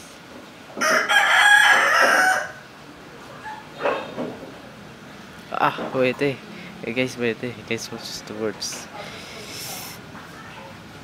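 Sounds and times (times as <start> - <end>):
rooster crowing: 0.8 - 2.7.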